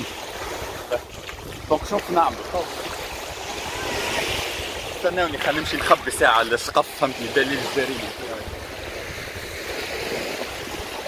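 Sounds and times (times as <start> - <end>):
small waves washing on sand: 0.0 - 11.0
wind buffeting microphone: 0.0 - 11.0.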